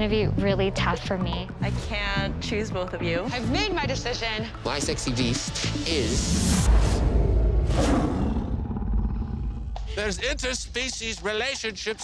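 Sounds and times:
trailer music: 0.0s - 12.0s
animal-like roar: 7.0s - 9.7s.

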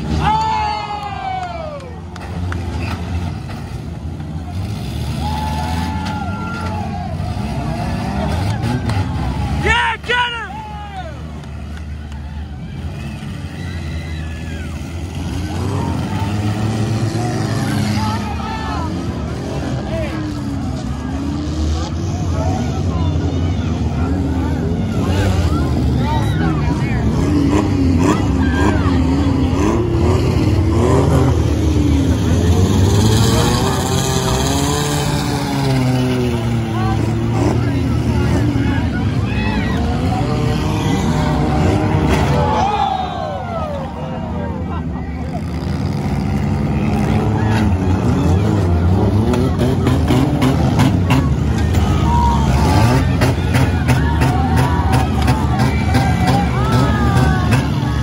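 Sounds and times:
car engines revving: 0.0s - 58.0s
crowd voices: 0.0s - 58.0s.

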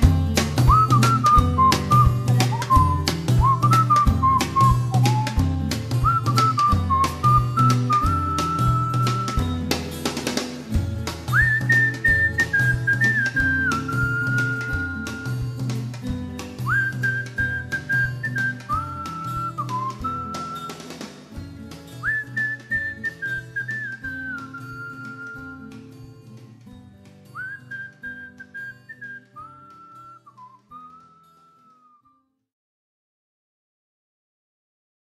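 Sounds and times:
pop band bass and drums: 0.0s - 22.2s
song accompaniment: 0.0s - 31.4s
whistled melody: 0.6s - 9.9s, 11.2s - 26.4s, 27.2s - 32.4s.

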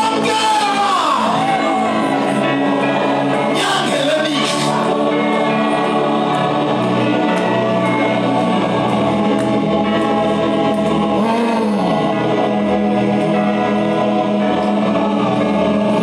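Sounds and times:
group gospel singing: 0.0s - 16.0s.

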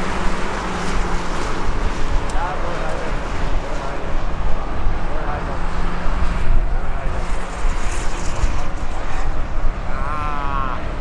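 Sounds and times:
racing car engines: 0.0s - 11.0s
wind rumble on microphone: 0.0s - 11.0s.

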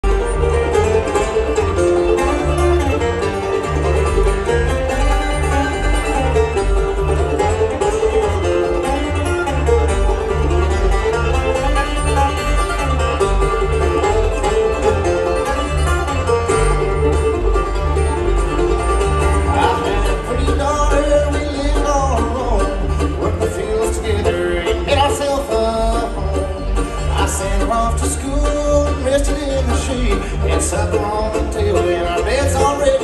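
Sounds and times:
bluegrass band playing: 0.0s - 33.0s.

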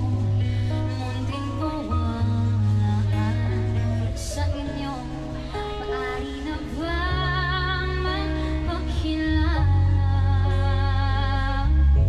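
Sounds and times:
live pop band: 0.0s - 12.0s
woman singing: 0.0s - 12.0s.

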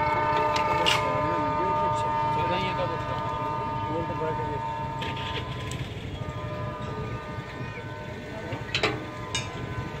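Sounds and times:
distant train rumble: 0.0s - 10.0s
faint steady tones: 0.0s - 10.0s.

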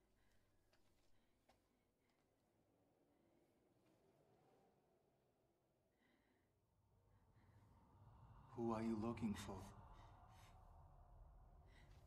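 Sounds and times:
woman breathing faintly: 9.6s - 12.0s.

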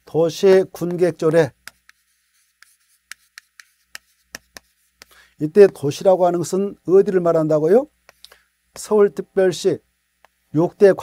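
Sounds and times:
chalk tapping and scratching: 0.8s - 6.2s, 8.0s - 9.0s.

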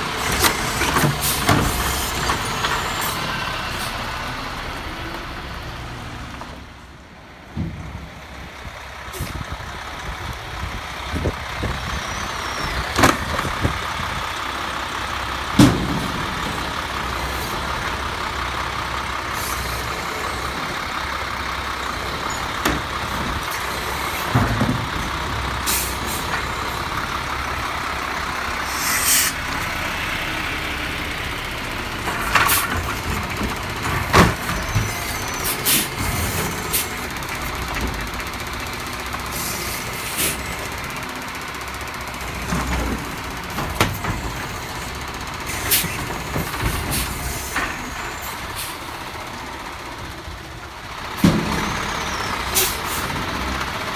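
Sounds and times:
garbage truck diesel engine whining: 0.0s - 53.9s
knocks and clunks: 15.5s - 17.6s, 22.4s - 25.6s, 32.0s - 35.2s, 42.3s - 44.9s.

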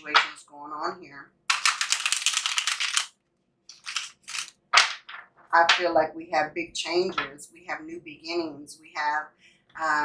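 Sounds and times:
cards shuffling flutter: 1.5s - 3.1s, 3.7s - 5.3s.

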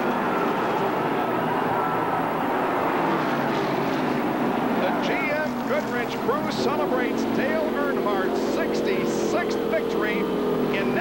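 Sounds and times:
grandstand crowd noise: 0.0s - 11.0s
race car engines droning: 0.0s - 11.0s
man speaking: 4.8s - 11.0s.

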